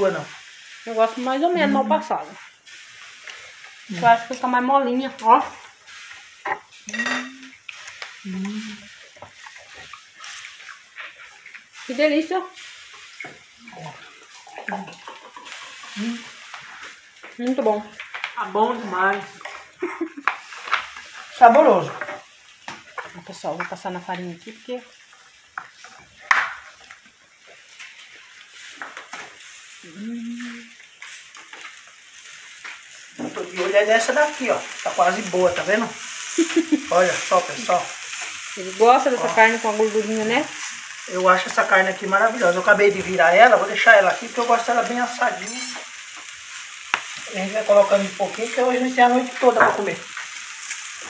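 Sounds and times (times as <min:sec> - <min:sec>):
meat sizzling on a grill: 0:00.0 - 0:51.0.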